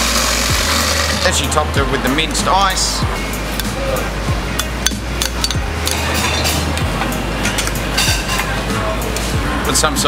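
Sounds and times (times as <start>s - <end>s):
music playing: 0.0s - 10.0s
metal spoon clinking glass: 4.6s - 6.6s.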